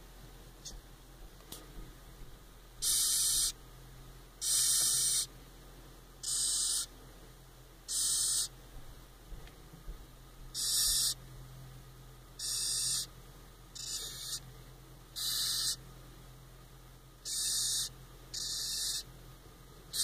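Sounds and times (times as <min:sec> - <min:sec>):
cockroach hissing: 0:02.8 - 0:03.6, 0:04.4 - 0:05.3, 0:06.2 - 0:06.9, 0:07.9 - 0:08.5, 0:10.6 - 0:11.2, 0:12.4 - 0:13.1, 0:13.8 - 0:14.4, 0:15.2 - 0:15.8, 0:17.2 - 0:19.0.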